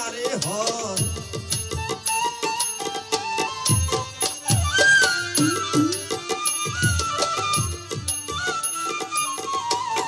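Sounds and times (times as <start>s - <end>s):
drum beats: 0.0s - 10.0s
bamboo flute melody: 1.7s - 10.0s.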